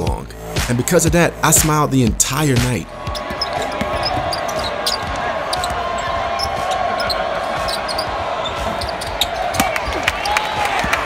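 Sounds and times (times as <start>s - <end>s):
arena crowd noise: 2.8s - 11.0s
basketball bouncing on hardwood: 3.1s - 7.1s
sneaker squeaks: 3.1s - 11.0s.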